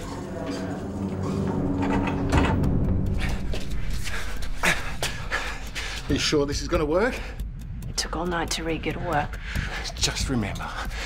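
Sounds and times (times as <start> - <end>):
man panting hard: 9.4 - 10.0, 10.7 - 11.0.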